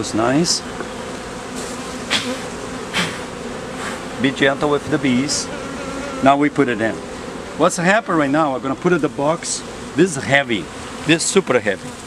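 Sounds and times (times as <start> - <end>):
bees buzzing: 0.0 - 12.0.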